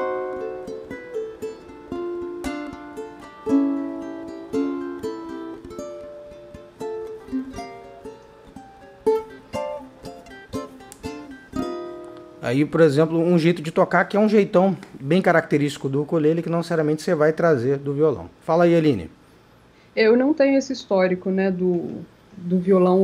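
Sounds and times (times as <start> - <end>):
ukulele fingerpicked: 0.0 - 12.8.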